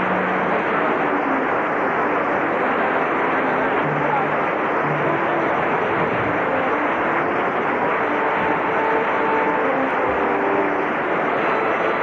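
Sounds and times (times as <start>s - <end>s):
audience applauding: 0.0s - 12.0s
audience calls: 0.0s - 12.0s.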